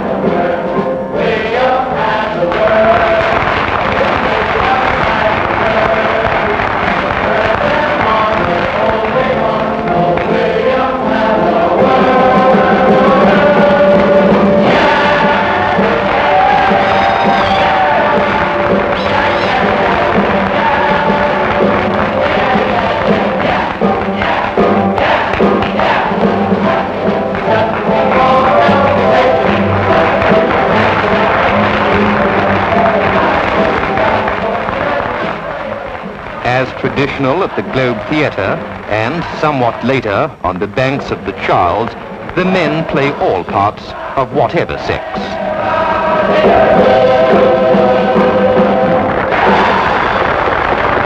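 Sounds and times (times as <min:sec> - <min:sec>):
chorus singing held notes: 0:00.0 - 0:51.0
film soundtrack noise: 0:00.0 - 0:51.0
musical accompaniment: 0:00.0 - 0:51.0.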